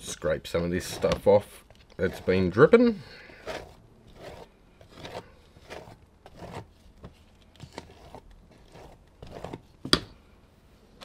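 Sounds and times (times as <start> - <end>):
paint scraping strokes: 0.1 - 9.8.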